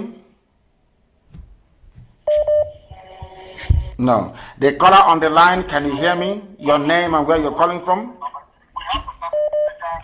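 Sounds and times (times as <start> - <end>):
short electronic beeps: 2.3 - 2.9.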